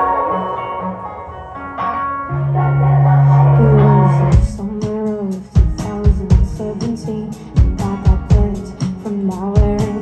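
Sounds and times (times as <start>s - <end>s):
electric guitar picking notes: 0.0s - 5.1s.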